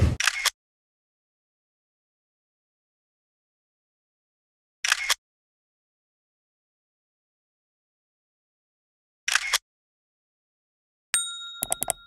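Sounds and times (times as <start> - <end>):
bell ding: 11.2 - 12.0
quick clicks: 11.6 - 12.0.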